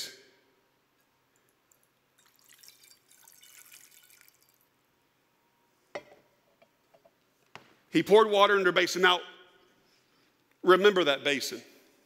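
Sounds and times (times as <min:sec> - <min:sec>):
water drips: 0:01.3 - 0:04.7
water trickling into a basin: 0:01.4 - 0:04.7.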